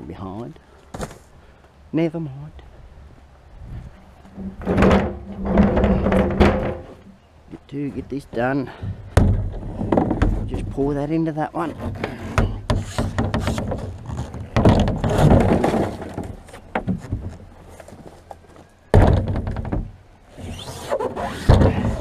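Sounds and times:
plastic bins knocking: 0:04.3 - 0:07.0, 0:12.4 - 0:17.4, 0:18.9 - 0:19.9
rubbish tumbling into bin: 0:14.5 - 0:17.1.

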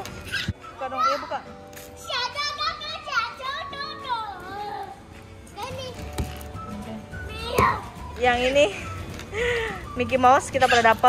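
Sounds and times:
children's voices and chatter: 0:00.0 - 0:06.2
background music: 0:00.0 - 0:11.0.

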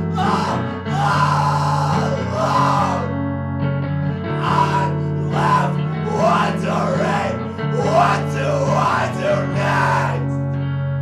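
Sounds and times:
bass guitar: 0:00.0 - 0:11.0.

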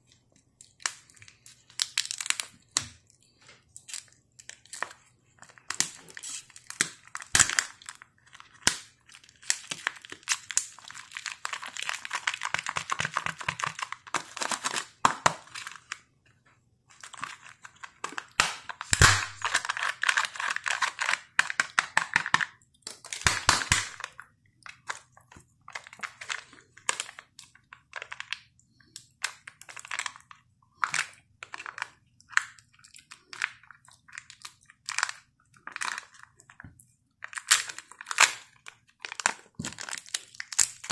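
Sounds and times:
foil wrappers crinkling and tearing: 0:00.7 - 0:02.8, 0:03.8 - 0:16.0, 0:17.0 - 0:36.2, 0:37.2 - 0:40.9.

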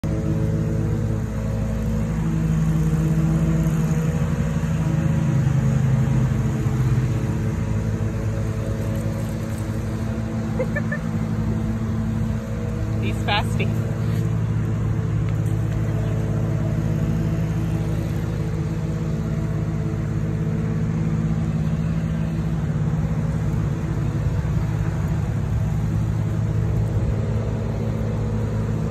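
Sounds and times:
motor humming steadily: 0:00.0 - 0:28.9.

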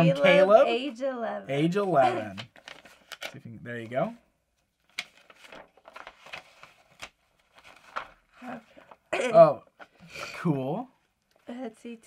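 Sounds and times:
paper rustling: 0:01.9 - 0:04.0, 0:04.6 - 0:09.1
crisp paper crackles: 0:02.2 - 0:03.4, 0:04.8 - 0:09.1.

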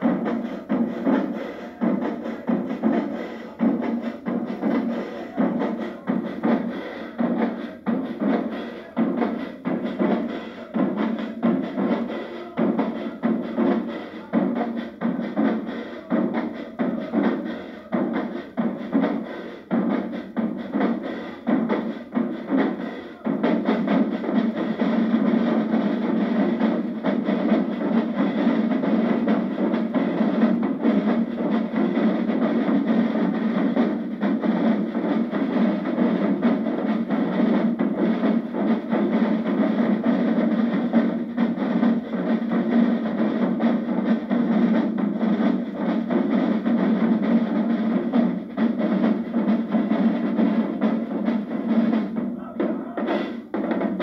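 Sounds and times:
marching drumline playing cadence: 0:00.0 - 0:54.0.

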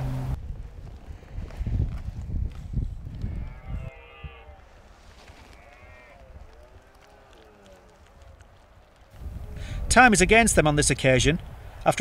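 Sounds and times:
wind rumbling on microphone: 0:00.0 - 0:12.0
distant animals bleating: 0:03.2 - 0:08.5.

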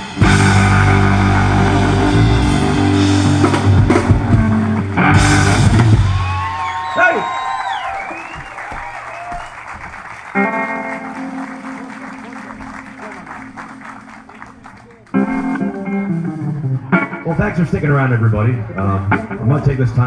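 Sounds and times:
drum and cymbal hits: 0:00.0 - 0:06.4
live rock band playing: 0:00.0 - 0:06.8, 0:10.1 - 0:20.0.

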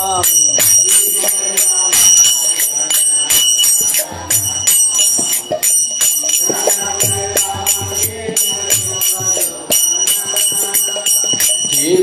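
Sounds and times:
brass hand cymbals clashing: 0:00.0 - 0:12.0
hand drum beating: 0:00.0 - 0:12.0.

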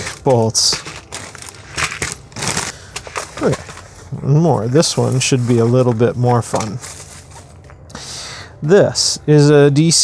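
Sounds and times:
man speaking: 0:03.4 - 0:06.8, 0:08.6 - 0:10.0.

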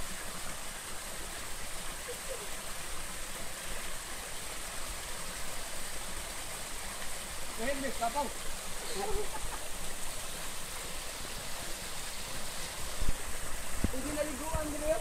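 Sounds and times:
waterfall splashing over rocks: 0:00.0 - 0:15.0.

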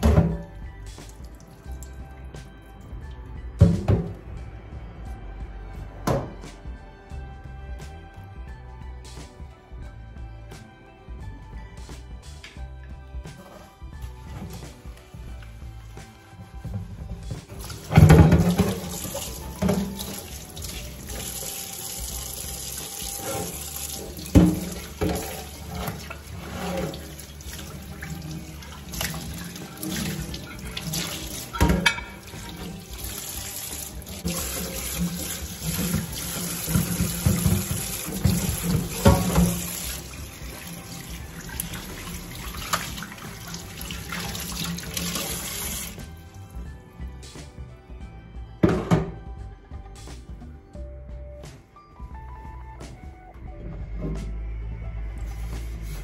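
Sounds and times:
crockery knocking on sink: 0:03.6 - 0:04.2, 0:24.2 - 0:25.4, 0:30.9 - 0:32.7, 0:36.7 - 0:39.7, 0:48.6 - 0:49.2
tap running into sink: 0:17.4 - 0:46.0.

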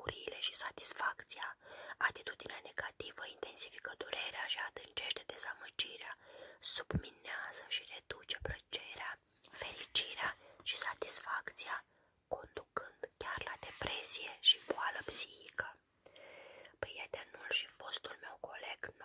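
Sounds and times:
woman whispering hoarsely: 0:06.7 - 0:15.8.

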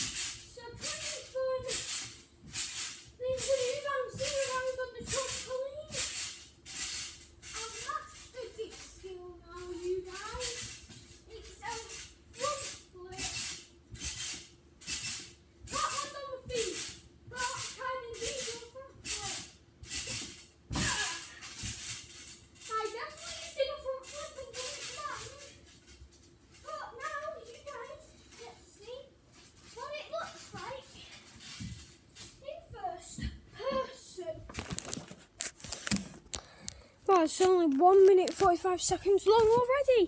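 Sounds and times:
trampoline bouncing: 0:00.0 - 0:36.3, 0:37.1 - 0:40.0.

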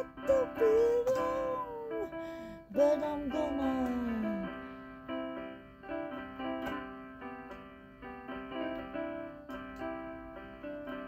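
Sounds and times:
woman singing: 0:00.0 - 0:04.6
electronic keyboard chords: 0:00.0 - 0:11.0.

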